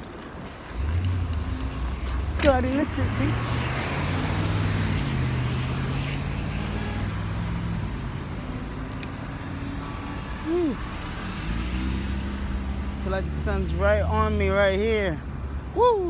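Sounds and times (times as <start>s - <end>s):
vehicle engines humming: 0.0s - 16.0s.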